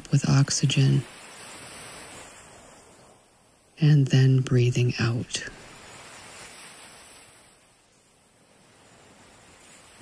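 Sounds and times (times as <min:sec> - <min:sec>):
surf washing on sandy beach: 0:00.0 - 0:04.3, 0:05.0 - 0:10.0.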